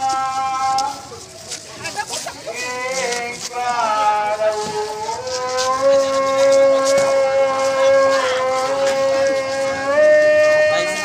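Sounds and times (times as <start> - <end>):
faint crowd noise: 0.0 - 11.0
voice holding a long note: 4.1 - 11.0.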